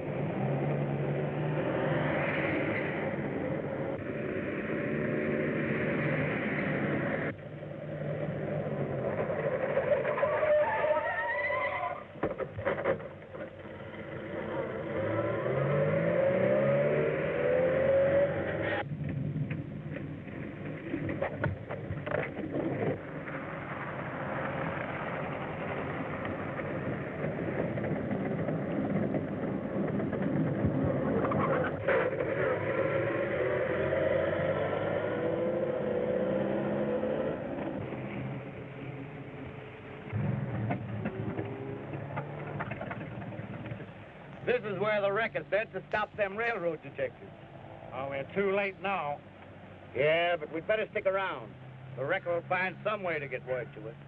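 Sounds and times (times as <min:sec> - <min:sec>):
car engines revving: 0:00.0 - 0:54.0.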